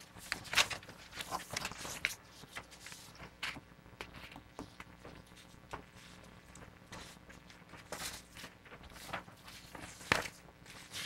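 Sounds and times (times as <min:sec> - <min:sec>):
paper sheets rustling: 0:00.0 - 0:11.0
sharp paper snap: 0:07.8 - 0:11.0.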